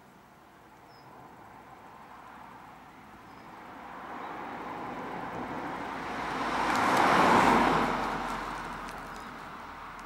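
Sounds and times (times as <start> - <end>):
car driving past: 3.8 - 9.9.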